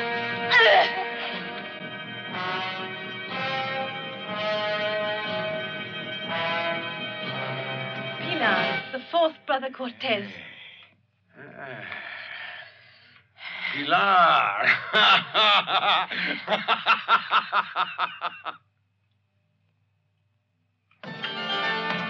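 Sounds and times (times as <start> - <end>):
person speaking: 9.0 - 10.8
loud laughter in rapid bursts: 14.6 - 18.6.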